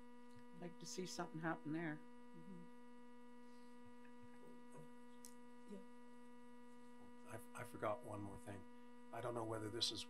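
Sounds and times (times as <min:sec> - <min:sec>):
steady electrical hum: 0:00.0 - 0:10.0.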